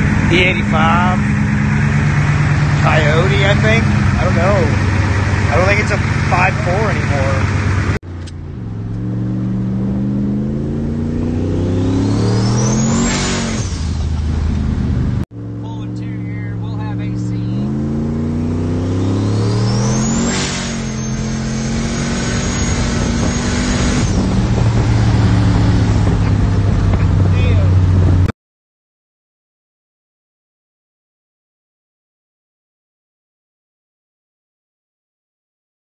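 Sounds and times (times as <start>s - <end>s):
engine accelerating hard: 0.0s - 28.3s.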